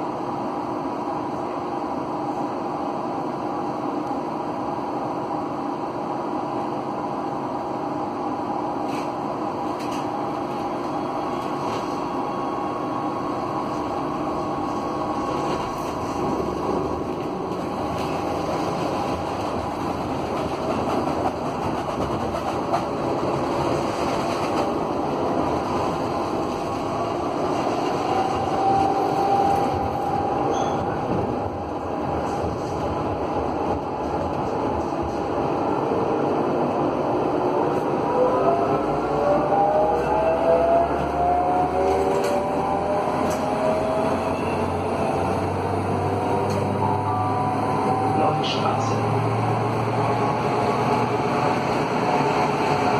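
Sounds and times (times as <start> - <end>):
tram motor whine: 0.0 - 52.9
tram wheels rolling on rail: 8.8 - 52.9.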